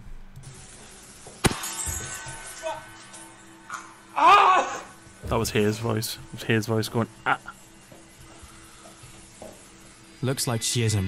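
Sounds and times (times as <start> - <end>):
faint background music: 0.0 - 11.0
wine glass shattering: 1.4 - 3.2
man crying out: 4.1 - 5.0.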